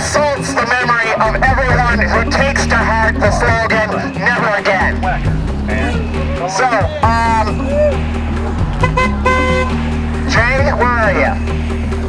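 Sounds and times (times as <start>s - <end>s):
street traffic hum: 0.0s - 12.0s
vehicle horn toot: 8.8s - 9.8s.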